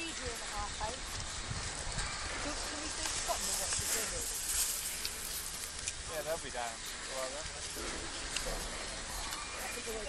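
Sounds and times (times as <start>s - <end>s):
skis sliding over snow: 0.0s - 10.0s
wind rumble on microphone: 0.0s - 10.0s.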